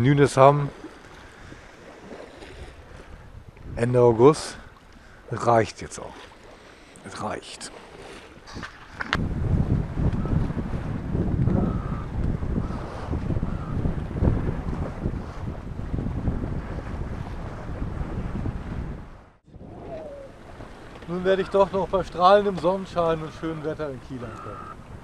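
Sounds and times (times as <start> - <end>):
water rushing along a hull: 0.0 - 25.0
wind buffeting microphone: 0.7 - 4.7, 8.0 - 25.0.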